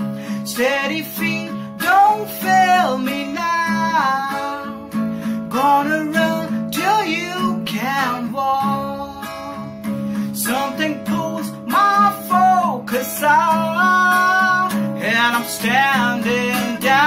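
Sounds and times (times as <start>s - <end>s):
man singing: 0.0s - 17.0s
strummed acoustic guitar: 0.0s - 17.0s.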